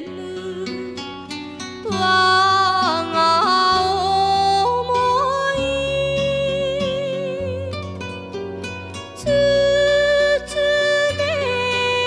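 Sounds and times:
woman singing: 0.0s - 8.0s, 9.2s - 12.0s
instrumental accompaniment: 0.0s - 12.0s.

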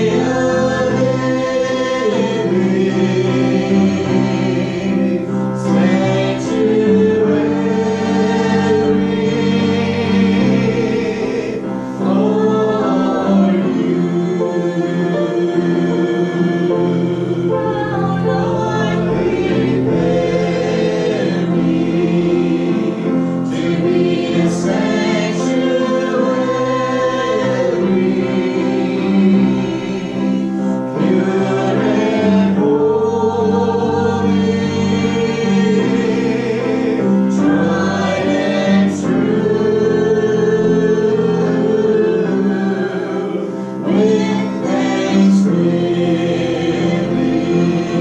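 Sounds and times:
congregation singing gospel chorus: 0.0s - 48.0s.

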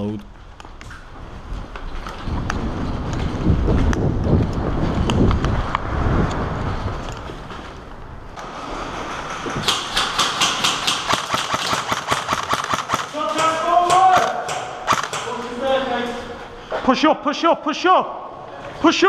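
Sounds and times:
airsoft guns firing: 9.6s - 15.5s.

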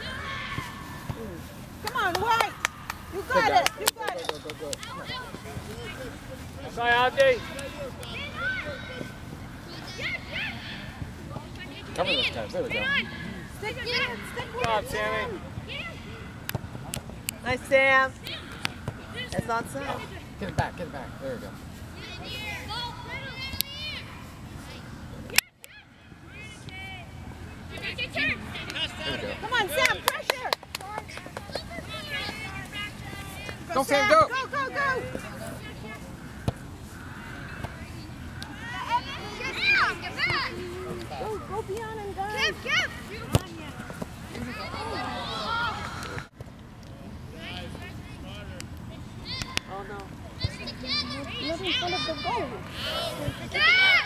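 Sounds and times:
children shouting: 0.0s - 1.0s, 50.8s - 54.0s.

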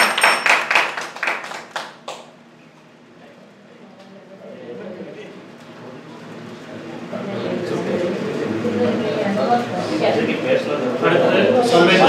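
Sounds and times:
audience applauding: 0.0s - 2.3s.

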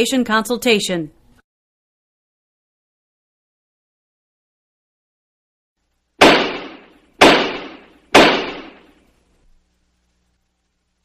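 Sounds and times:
sharp hits: 6.2s - 8.9s.

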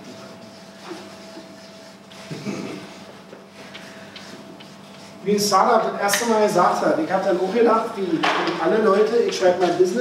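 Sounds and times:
steady low hum: 0.0s - 10.0s
marker scratching on paper: 4.1s - 5.2s.

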